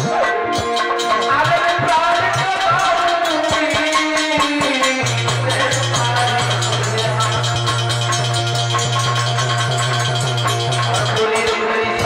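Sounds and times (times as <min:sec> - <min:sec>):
instrumental folk music: 0:00.0 - 0:12.0
shaker percussion beat: 0:00.0 - 0:12.0.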